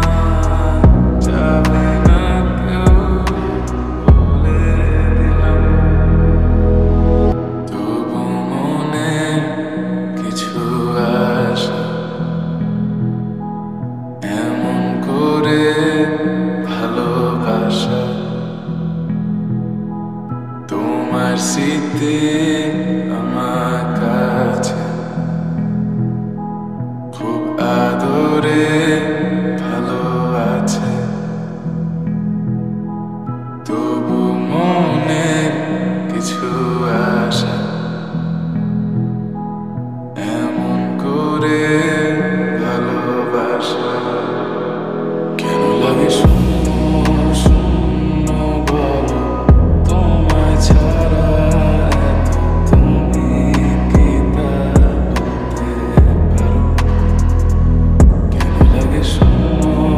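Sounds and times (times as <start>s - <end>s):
sustained chords: 0.0s - 11.1s, 41.8s - 59.9s
man singing drawn-out vocal: 0.0s - 12.6s, 14.2s - 18.9s, 20.7s - 25.4s, 27.1s - 31.7s, 33.6s - 38.4s, 40.1s - 59.9s
soft sustained backing music: 0.0s - 59.9s.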